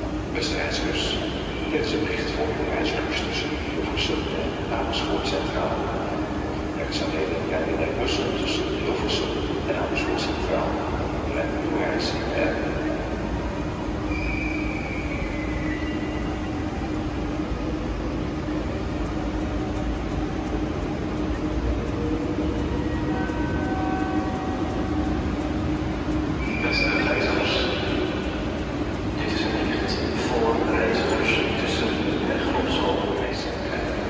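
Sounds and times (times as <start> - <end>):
electric train humming: 0.0 - 34.0
high squeal: 14.0 - 16.6, 26.4 - 27.9
faint voices: 17.2 - 34.0.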